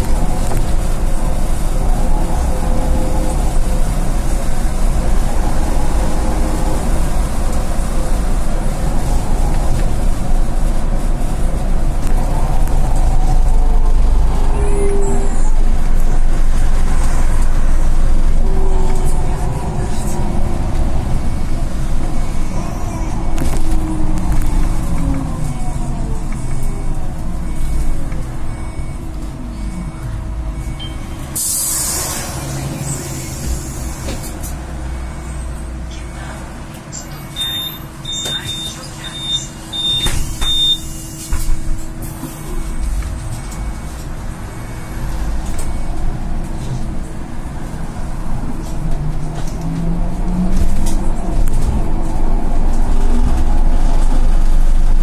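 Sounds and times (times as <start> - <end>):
trolleybus running rumble: 0.0 - 55.0
air brake hiss: 31.4 - 34.1.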